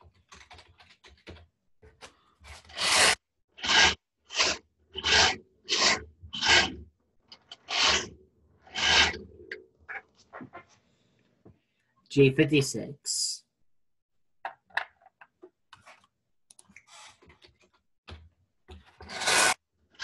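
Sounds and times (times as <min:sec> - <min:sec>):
rough rasping strokes: 0:02.6 - 0:06.8, 0:07.5 - 0:09.6, 0:19.0 - 0:19.6.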